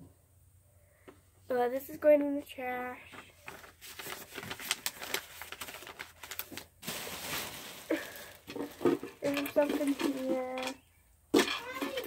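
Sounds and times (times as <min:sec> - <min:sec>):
crinkling rustles: 0:03.1 - 0:12.0
objects thrown into trash can: 0:06.8 - 0:12.0.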